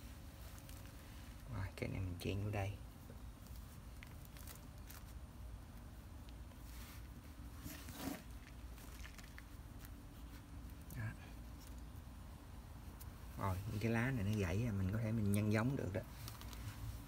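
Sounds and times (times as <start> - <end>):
hands rustling plant stems: 0.0 - 17.0
steady low hum: 0.0 - 17.0.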